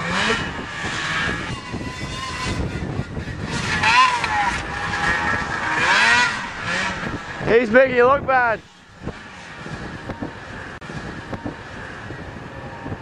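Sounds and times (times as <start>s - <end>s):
distant snowmobile engine: 0.0s - 13.0s.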